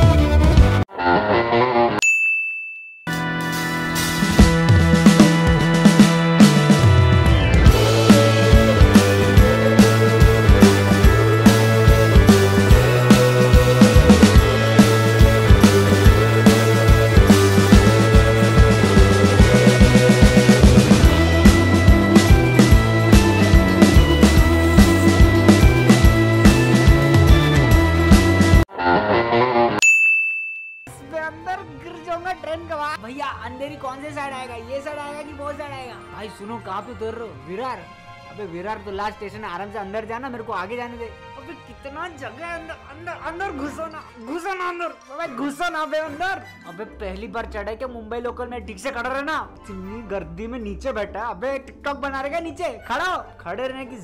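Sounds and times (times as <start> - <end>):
background music: 0.0 - 2.0, 3.1 - 29.8, 30.9 - 54.0
bright bell-like ding: 2.0 - 3.1, 29.8 - 31.0.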